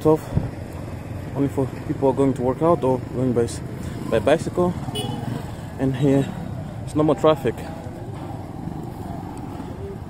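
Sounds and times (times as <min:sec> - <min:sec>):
low rumble of street traffic: 0:00.0 - 0:10.0
motorcycle engines running: 0:00.0 - 0:10.0.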